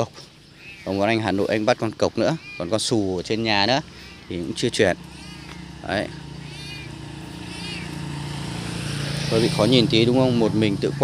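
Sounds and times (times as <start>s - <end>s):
faint high-pitched calls: 0.0s - 9.8s
small engine humming: 0.0s - 11.0s.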